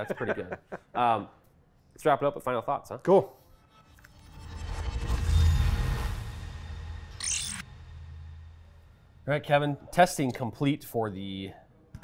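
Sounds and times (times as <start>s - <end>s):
glitchy digital crackle: 7.0s - 7.7s.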